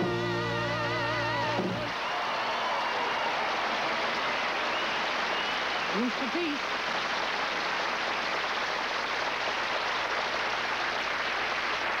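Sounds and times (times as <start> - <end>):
audience applauding: 1.8 - 12.0.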